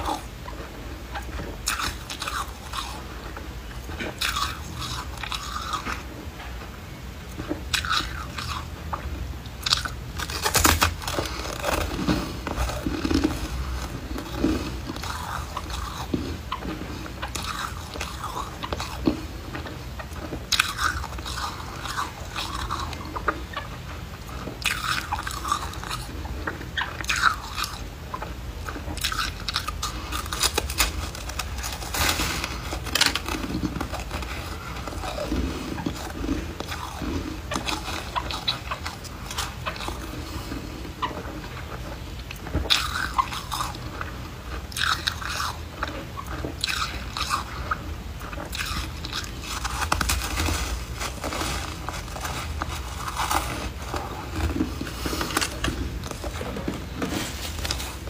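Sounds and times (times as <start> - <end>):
crunchy biting and chewing: 0.0 - 58.0.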